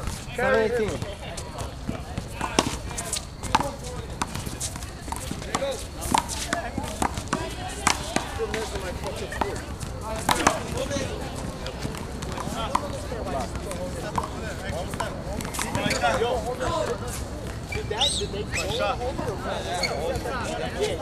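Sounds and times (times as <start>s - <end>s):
faint onlookers talking: 0.0s - 21.0s.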